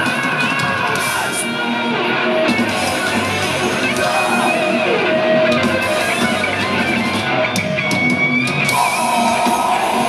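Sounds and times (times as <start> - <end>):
bass guitar: 0.0 - 10.0
distorted electric guitars: 0.0 - 10.0
drum kit: 0.0 - 10.0.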